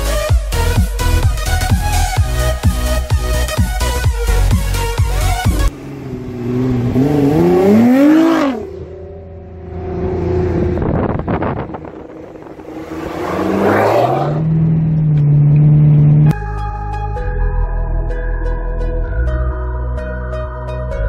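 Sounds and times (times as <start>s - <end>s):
car engine accelerating hard: 5.2s - 16.4s.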